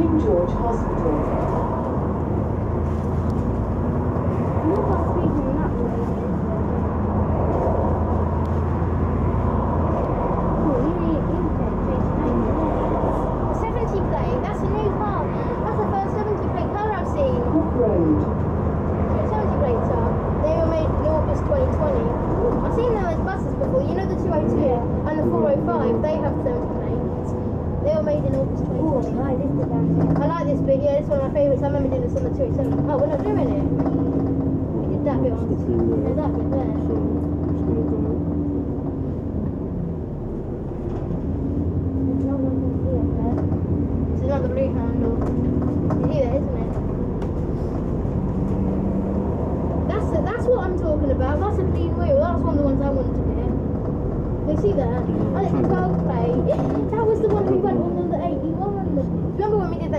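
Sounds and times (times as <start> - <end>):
passengers talking indistinctly: 0.0 - 8.8, 9.8 - 59.9
bus engine drone: 0.0 - 59.9
road noise: 0.0 - 59.9.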